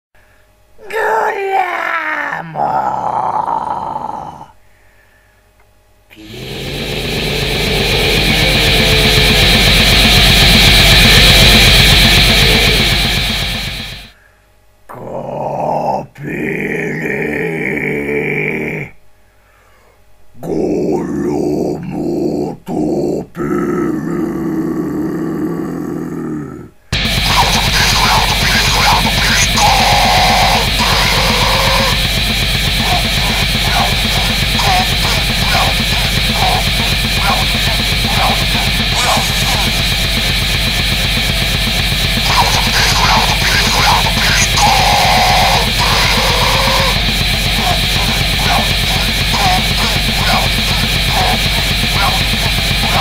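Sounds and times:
harsh metal vocal groan: 6.1s - 14.1s, 20.4s - 53.0s
low rough growl: 6.1s - 14.1s.

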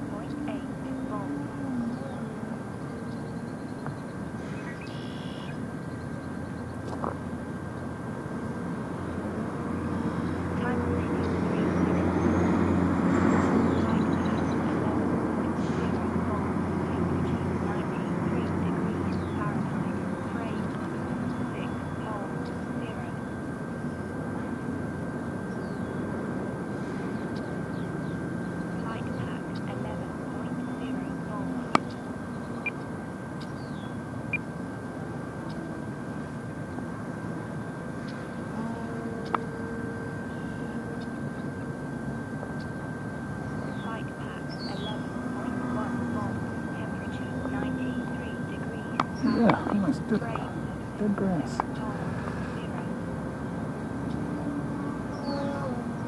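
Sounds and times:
model plane motor droning: 30.0s - 43.8s, 45.0s - 56.0s.

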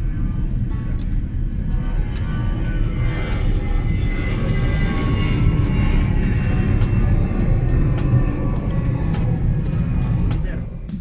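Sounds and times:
jet aircraft rumble: 0.0s - 11.0s
music: 0.0s - 11.0s.

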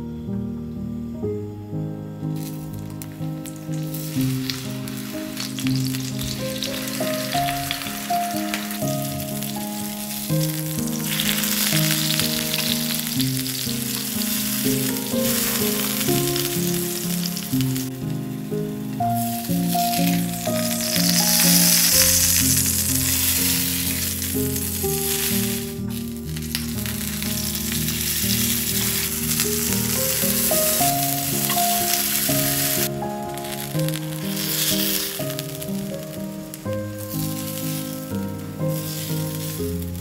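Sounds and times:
gentle background music: 0.0s - 40.0s
food sizzling in hot oil: 2.4s - 40.0s.

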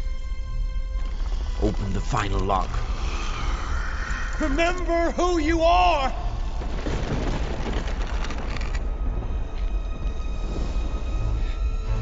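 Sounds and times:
deep soundtrack rumble: 0.0s - 12.0s.

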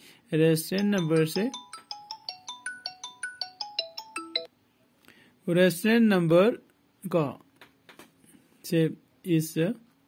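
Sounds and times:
phone ringtone melody: 0.8s - 4.5s.

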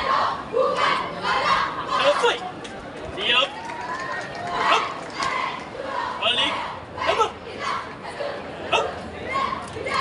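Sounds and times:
group shouting a chant: 4.6s - 10.0s.

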